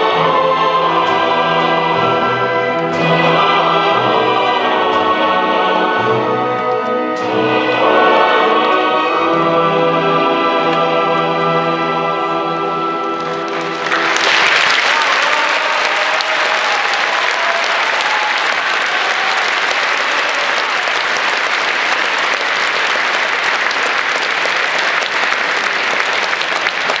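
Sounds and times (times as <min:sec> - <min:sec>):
audience applause: 0:13.1 - 0:27.0.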